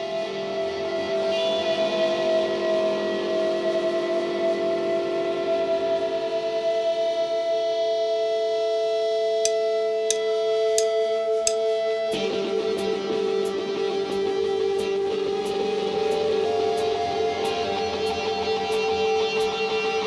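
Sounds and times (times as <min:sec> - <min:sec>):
ringing electric guitar chord: 0:09.5 - 0:20.0.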